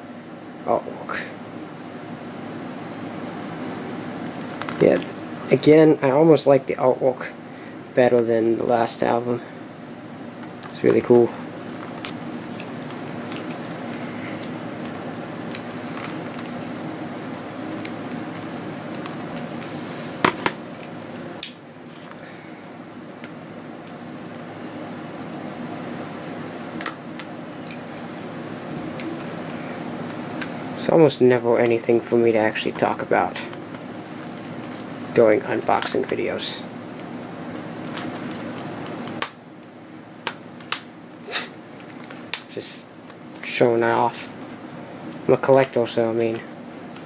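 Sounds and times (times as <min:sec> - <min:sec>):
room hum: 0:00.0 - 0:47.0.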